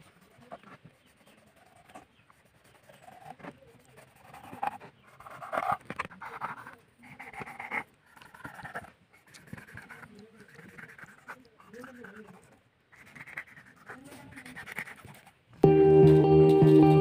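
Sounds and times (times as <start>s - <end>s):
small clicks and scrapes: 0.0s - 6.8s
faint voice-like sounds: 0.0s - 15.5s.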